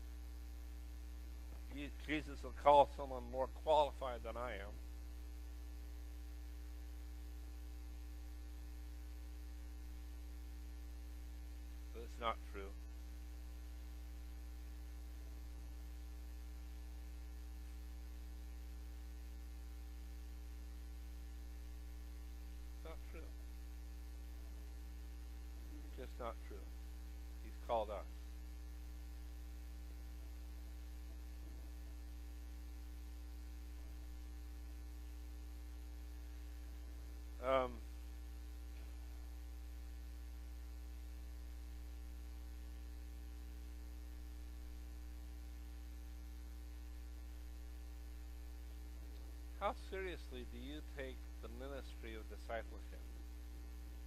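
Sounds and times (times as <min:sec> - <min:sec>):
electrical mains hum: 0:00.0 - 0:54.0
quiet voice sounds: 0:12.0 - 0:12.8, 0:22.8 - 0:23.5, 0:25.7 - 0:26.7, 0:37.4 - 0:37.9, 0:49.6 - 0:53.1.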